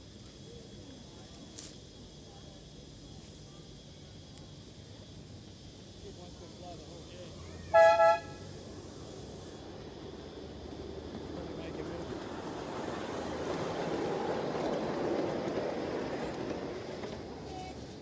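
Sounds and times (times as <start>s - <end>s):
train wheels rumbling on track: 0.0s - 18.0s
miniature train horn toots: 7.7s - 8.6s.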